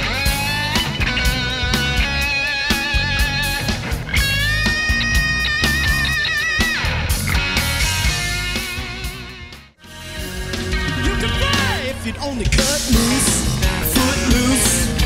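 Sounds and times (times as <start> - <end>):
electric guitar solo: 0.0 - 12.2
rock band playing: 0.0 - 15.0.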